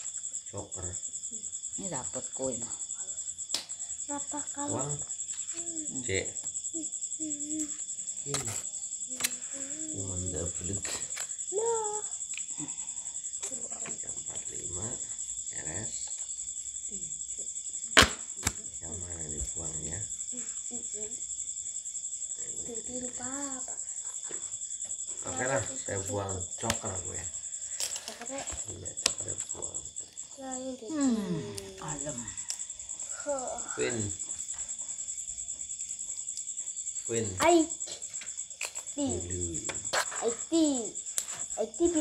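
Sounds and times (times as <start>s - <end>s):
crickets chirping: 0.0s - 42.0s
sharp snap: 3.5s - 3.8s, 18.0s - 18.6s, 26.6s - 26.9s
low voices: 5.6s - 6.3s, 9.3s - 11.0s, 28.2s - 32.4s, 33.2s - 34.2s, 37.1s - 37.6s, 39.0s - 40.8s.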